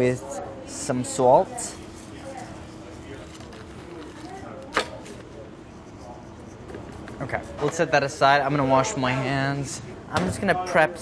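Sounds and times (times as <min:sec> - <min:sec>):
faint background chatter: 0:00.0 - 0:11.0.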